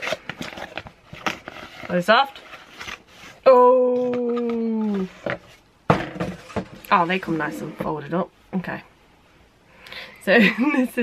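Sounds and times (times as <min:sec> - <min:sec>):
cardboard packaging clicks and rustles: 0:00.0 - 0:03.1.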